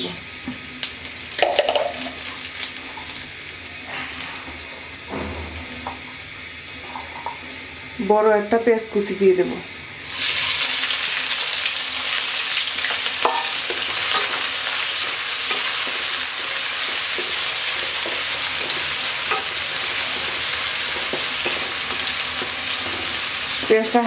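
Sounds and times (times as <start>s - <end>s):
onions sizzling in hot oil: 0.0s - 5.1s, 5.7s - 24.0s.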